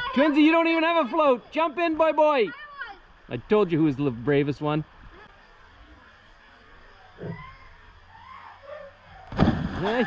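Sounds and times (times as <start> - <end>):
loud splash in water: 9.3 - 10.0.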